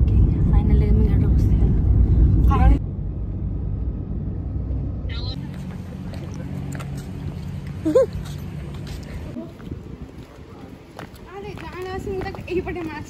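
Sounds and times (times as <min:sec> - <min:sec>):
car rumble from inside cabin: 0:00.0 - 0:06.4.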